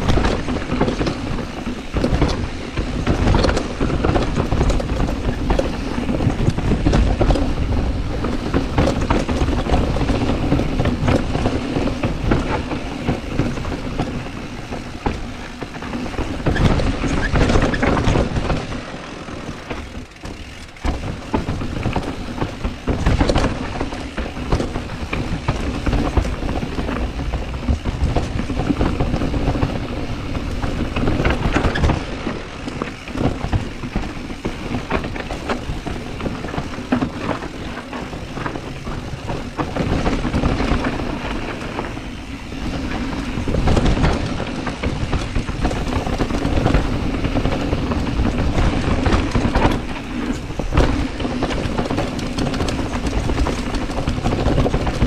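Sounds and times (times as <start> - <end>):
bike rattling and knocking: 0.0 - 55.0
tyres rolling over dirt and stones: 0.0 - 55.0
wind on microphone: 0.0 - 55.0.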